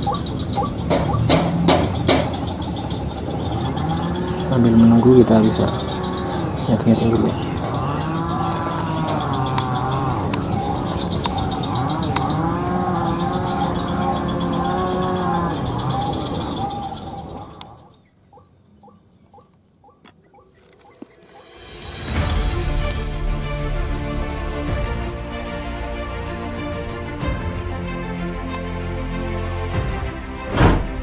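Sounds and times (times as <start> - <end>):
electronic bird calls: 0.0 - 21.6.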